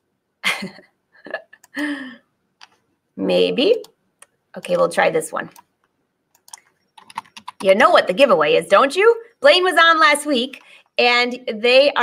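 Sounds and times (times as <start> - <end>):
woman laughing breathily: 0.4 - 2.3.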